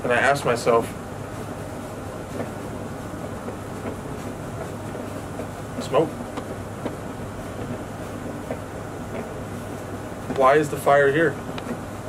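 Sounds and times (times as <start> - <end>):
low rumble and hiss: 0.0 - 12.0.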